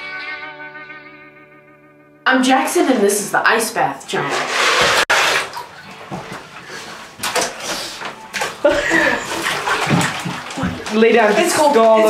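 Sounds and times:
water sloshing in a bathtub: 0:04.1 - 0:12.0.

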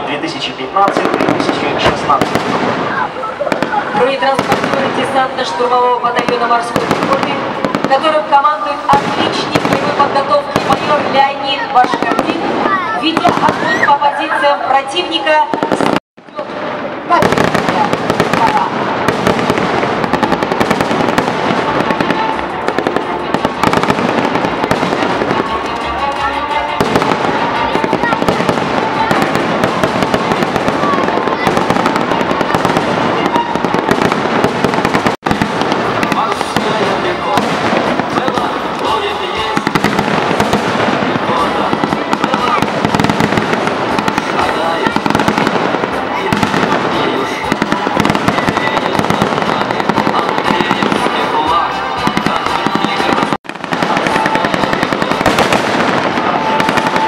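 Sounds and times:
pyrotechnic bangs: 0:00.8 - 0:14.0, 0:15.4 - 0:26.0, 0:26.6 - 0:57.0
rapid gunfire: 0:00.9 - 0:05.2, 0:17.2 - 0:25.6, 0:26.8 - 0:38.6, 0:39.6 - 0:51.0, 0:52.1 - 0:57.0
music: 0:22.3 - 0:29.1, 0:49.5 - 0:55.5.

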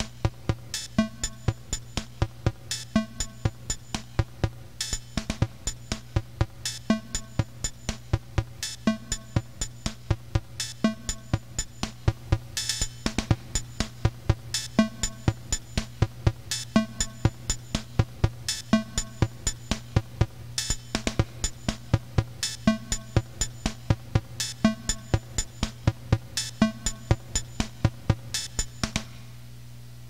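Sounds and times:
low synthesizer bass drone: 0:00.0 - 0:20.4
drum machine beat: 0:00.0 - 0:29.1.

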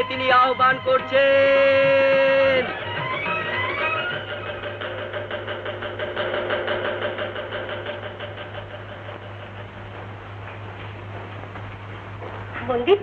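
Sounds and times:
low film soundtrack hum: 0:00.0 - 0:13.0.

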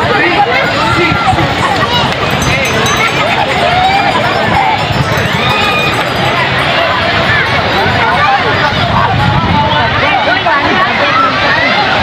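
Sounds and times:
people and children calling out: 0:00.0 - 0:12.0.

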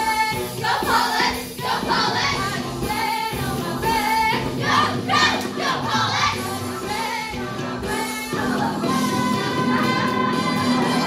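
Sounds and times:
young female voices singing in chorus: 0:00.0 - 0:11.0.

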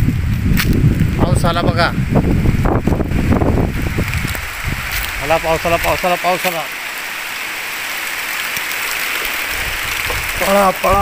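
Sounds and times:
wind buffeting microphone: 0:00.0 - 0:06.1, 0:08.8 - 0:11.0
heavy rain falling: 0:00.0 - 0:11.0.

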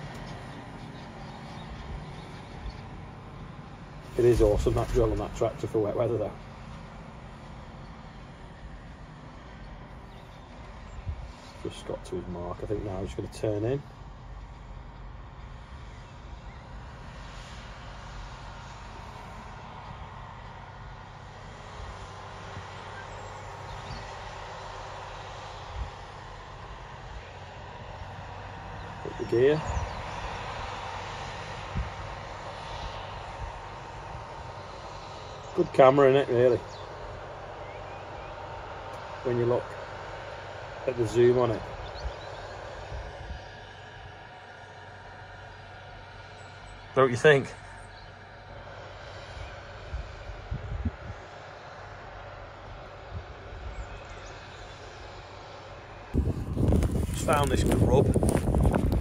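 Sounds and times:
tractor engine rumbling: 0:00.0 - 0:49.8, 0:53.8 - 0:59.0.

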